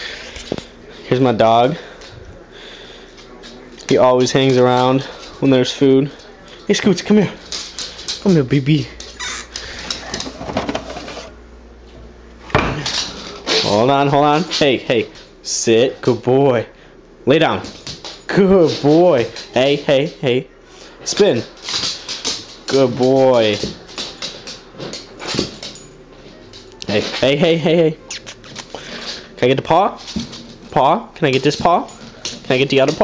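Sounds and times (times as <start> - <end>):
dog claws clicking on floor: 7.4 - 10.3, 12.8 - 15.3, 17.6 - 20.2, 21.1 - 27.5, 28.2 - 33.0.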